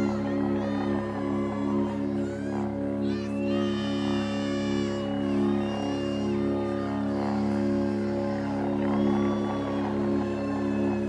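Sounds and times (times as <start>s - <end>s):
high gliding tones: 0.0s - 11.0s
low sustained drone chord: 0.0s - 11.0s.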